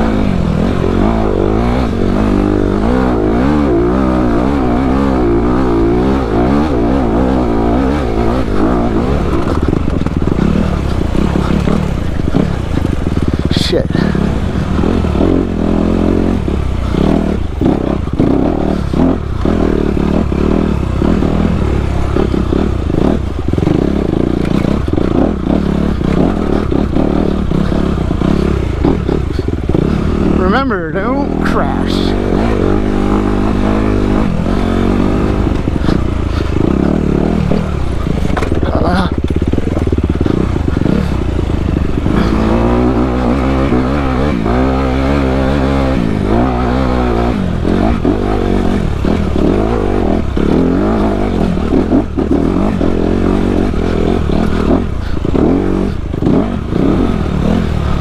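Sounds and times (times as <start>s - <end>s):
dirt bike engine revving: 0.0s - 58.0s
bike knocks and rattles: 35.6s - 41.3s.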